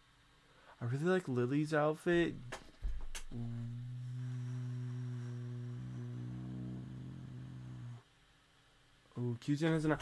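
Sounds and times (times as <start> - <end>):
man humming: 3.2 - 8.0.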